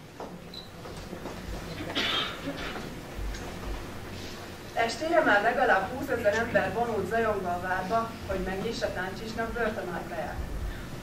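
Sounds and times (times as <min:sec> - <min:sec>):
hall room noise: 0:00.0 - 0:11.0.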